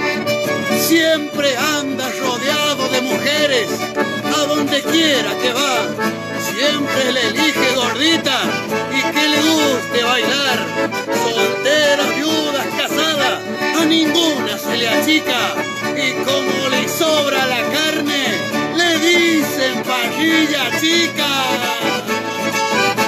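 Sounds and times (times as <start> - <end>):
accordion playing a lively tune: 0.0 - 23.0
acoustic guitar strumming: 0.0 - 23.0.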